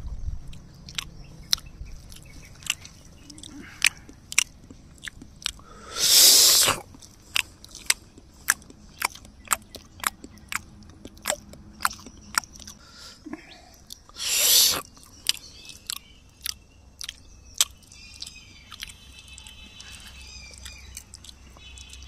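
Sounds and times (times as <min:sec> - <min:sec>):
birds chirping: 0:00.2 - 0:22.0
man chewing crunchy food: 0:00.4 - 0:22.0.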